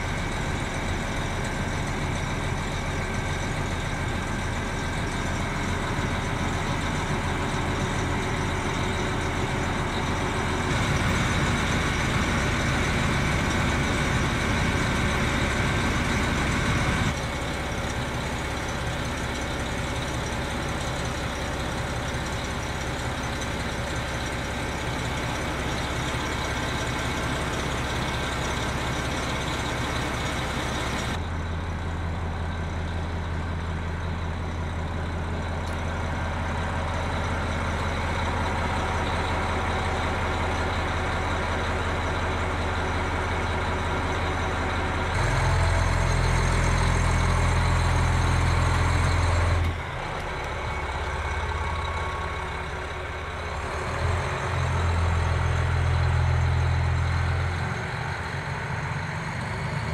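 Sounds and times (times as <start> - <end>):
diesel train engine idling: 0.0 - 59.9.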